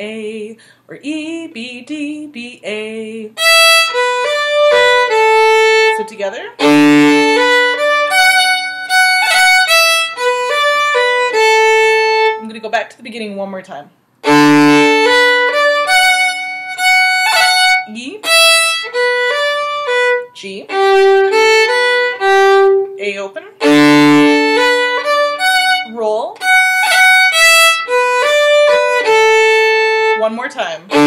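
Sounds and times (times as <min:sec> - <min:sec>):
solo fiddle playing: 0:03.4 - 0:12.5, 0:14.2 - 0:31.0.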